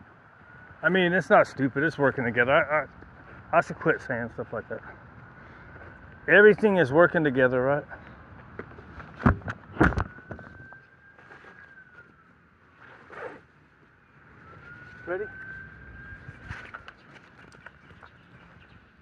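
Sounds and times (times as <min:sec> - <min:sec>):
high steady whine: 0:00.0 - 0:17.1.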